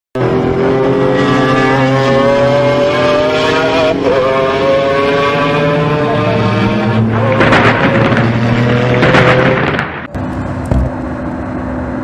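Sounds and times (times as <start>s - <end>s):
car engine accelerating hard: 0.2s - 12.0s.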